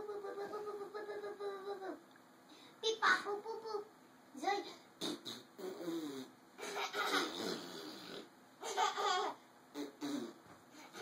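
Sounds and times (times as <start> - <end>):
playful wordless vocal sounds: 0.0 - 2.1.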